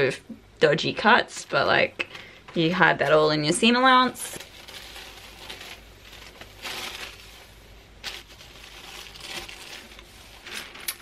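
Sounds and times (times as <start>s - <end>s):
tissue paper crinkling: 4.2s - 11.0s.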